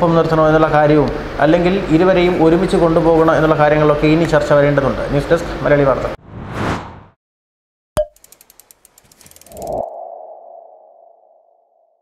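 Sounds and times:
fast run of ticks: 8.2s - 9.9s
ringing sonar-like tone: 9.6s - 12.0s.

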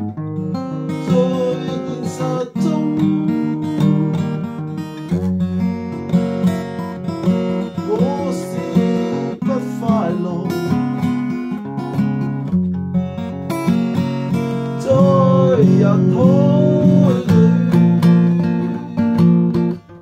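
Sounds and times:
acoustic guitar strumming: 0.0s - 20.0s
person singing: 0.7s - 4.5s, 7.6s - 11.0s, 14.7s - 19.3s.

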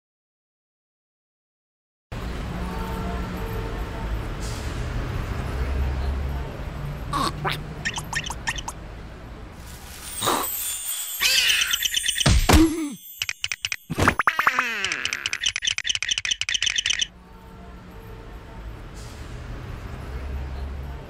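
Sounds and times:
rapid chirping squeaks: 7.8s - 8.8s, 11.2s - 12.5s, 13.1s - 17.1s
magical shimmer: 9.6s - 13.2s.

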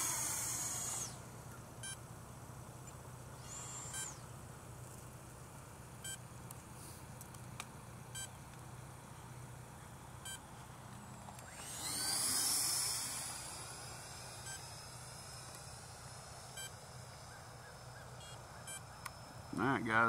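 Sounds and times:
electric ducted fan jet whining past: 0.0s - 1.9s, 9.4s - 20.0s
short electronic beeps: 18.2s - 18.9s.

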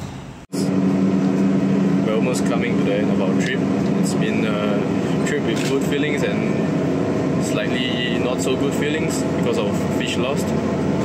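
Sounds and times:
restaurant room noise: 0.0s - 11.0s
vehicle engine and road drone: 0.0s - 11.0s.

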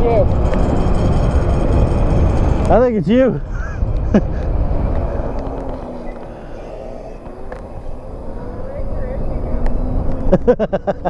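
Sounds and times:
small motorbikes humming: 0.0s - 11.0s
wind rumble on microphone: 0.0s - 11.0s
person laughing: 3.4s - 5.4s, 10.2s - 11.0s.

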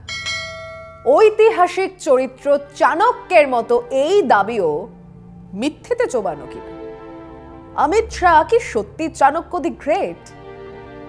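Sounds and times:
bell chime ringing: 0.0s - 1.4s
woman speaking: 1.1s - 6.8s, 7.8s - 10.3s.

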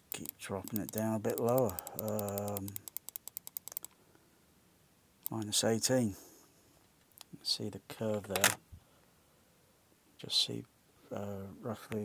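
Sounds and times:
rapid computer clicks: 0.0s - 4.0s.

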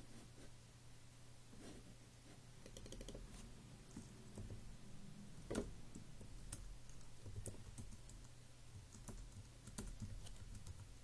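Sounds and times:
low steady hum: 0.0s - 11.0s
computer keyboard tapping: 2.6s - 3.2s, 5.5s - 11.0s.

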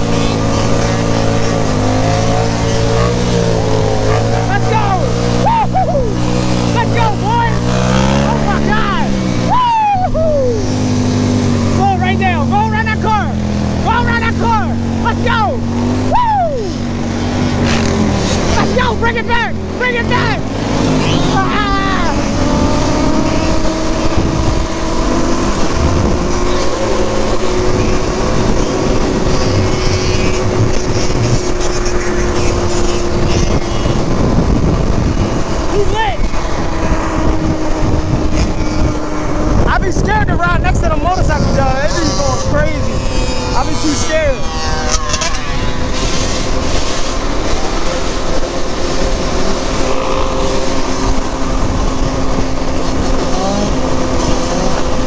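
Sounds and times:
motorcycles revving: 0.0s - 55.0s
quad engine running: 0.0s - 55.0s.

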